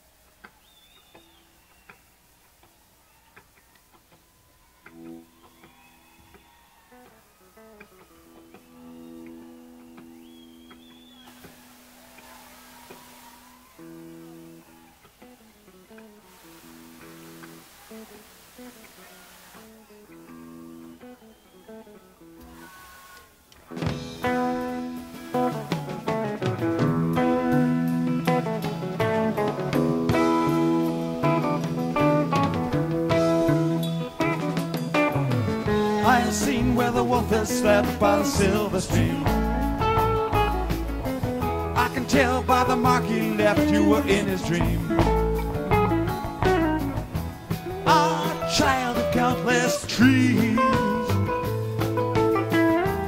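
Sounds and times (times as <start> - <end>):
rock band playing: 23.7 - 53.0
soft electric guitar notes: 23.8 - 53.0.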